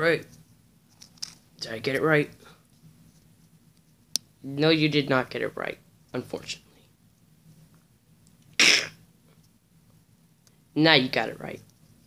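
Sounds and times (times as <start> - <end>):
person coughing: 8.6 - 9.0.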